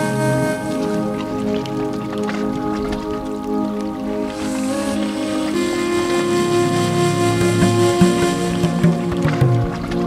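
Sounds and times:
background music sustained chords: 0.0 - 10.0
soft percussive knocks: 7.6 - 10.0.

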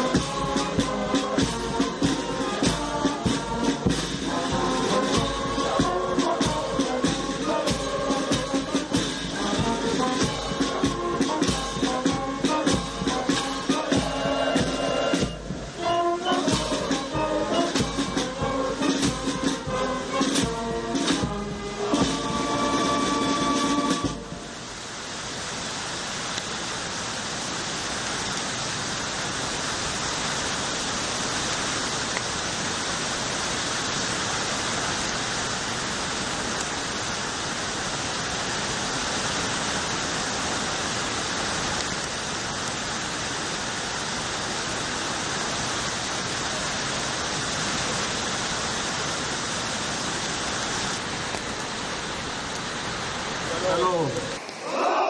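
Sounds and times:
music playing: 0.0 - 24.8
steady rain falling: 0.0 - 55.0.

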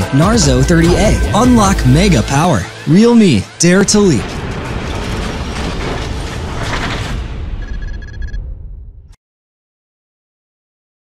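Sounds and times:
short electronic beeps: 7.6 - 8.4.

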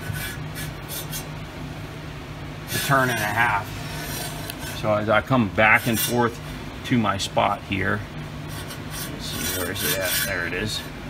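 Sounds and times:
steady low hum: 0.0 - 11.0
saw carriage scraping on rails: 5.7 - 6.4, 8.5 - 10.8.

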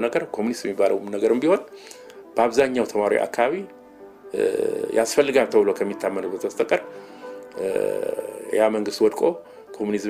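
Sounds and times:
background music: 0.0 - 10.0
person narrating: 7.6 - 8.8.

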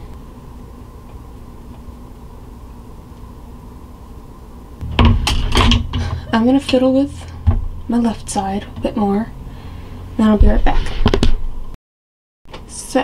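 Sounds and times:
electric space heater humming: 0.0 - 11.7
sharp knocks: 4.8 - 9.0
person speaking: 4.8 - 9.3.

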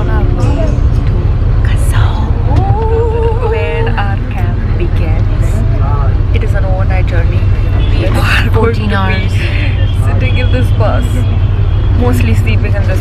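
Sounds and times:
bus engine rumble: 0.0 - 13.0
people's voices: 0.0 - 13.0.

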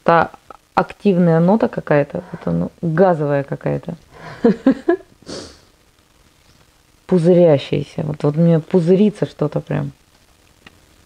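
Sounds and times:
person sniffing: 5.2 - 5.7.

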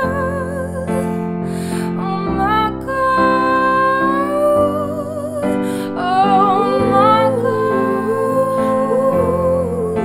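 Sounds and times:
woman singing wordless melody: 0.0 - 10.0.

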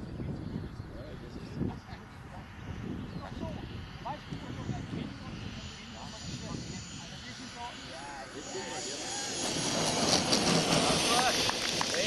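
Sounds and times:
model jet turbine whine: 0.0 - 12.0.

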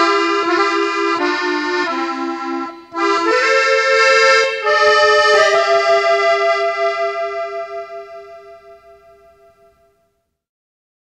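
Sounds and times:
held accordion chord: 0.0 - 10.0.

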